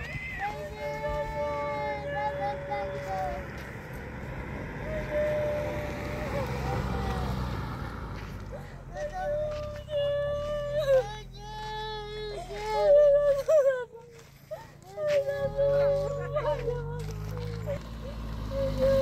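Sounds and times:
long wailing cries: 0.0s - 7.7s, 8.4s - 19.0s
car passing: 0.0s - 12.6s, 15.4s - 19.0s.

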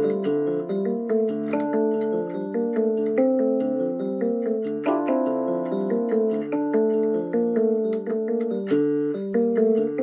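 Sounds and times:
electronic keyboard playing: 0.0s - 10.0s.

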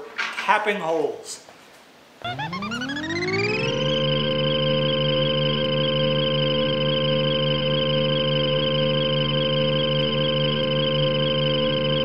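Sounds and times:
table saw motor whine: 2.2s - 6.0s.

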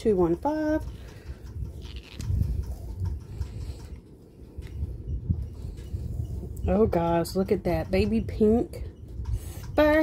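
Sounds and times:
low rumbling handling noise: 0.0s - 10.0s.

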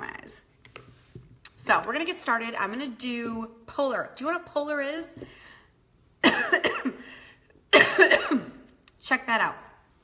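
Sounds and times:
woman coughing: 6.2s - 7.1s, 7.7s - 8.7s.

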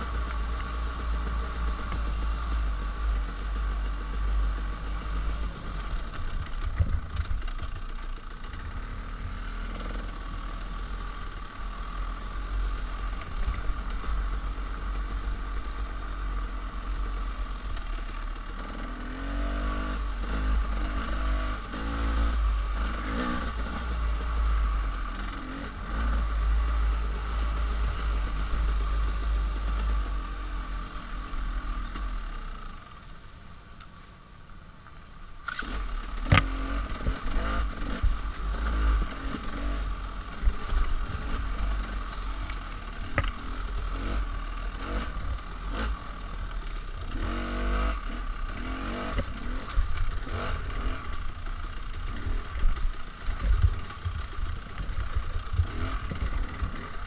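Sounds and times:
dirt bike engine revving: 0.0s - 32.3s, 35.4s - 57.0s.

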